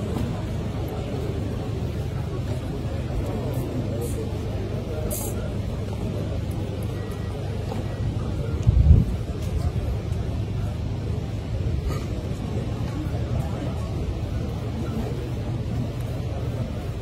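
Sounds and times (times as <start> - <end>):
indistinct background voices: 0.0 - 17.0.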